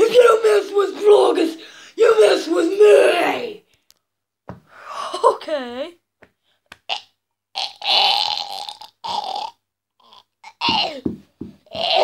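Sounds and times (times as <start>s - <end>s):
boy groaning: 0.0s - 3.5s, 10.0s - 12.0s
boy croaking: 0.0s - 3.6s, 6.9s - 12.0s.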